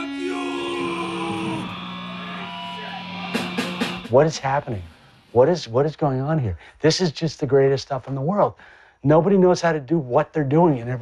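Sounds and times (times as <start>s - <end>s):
electric guitar sustained notes: 0.0s - 5.4s.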